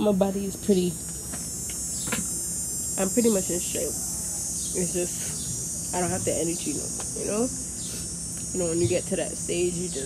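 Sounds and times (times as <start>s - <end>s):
background hum: 0.0s - 10.0s
high-pitched buzz: 0.0s - 10.0s.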